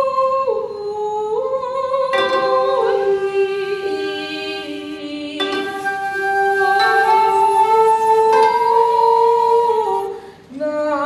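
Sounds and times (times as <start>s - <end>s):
koto and bamboo flute playing: 2.1s - 10.3s.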